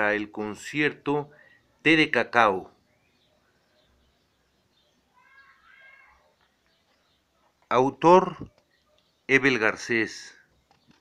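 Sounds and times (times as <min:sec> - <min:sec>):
faint high-pitched cry: 0:05.0 - 0:06.5.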